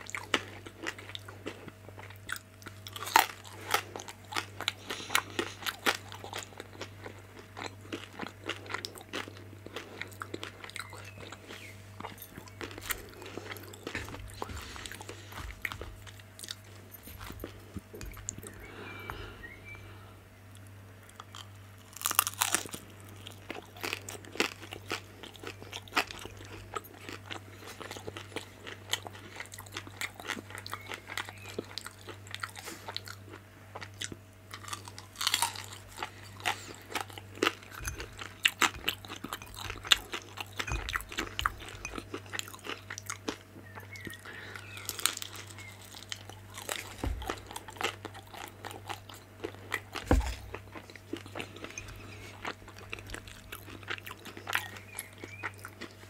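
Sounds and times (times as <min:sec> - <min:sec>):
crunchy chewing of fried dumplings: 0:00.0 - 0:56.0
low steady hum: 0:00.0 - 0:56.0.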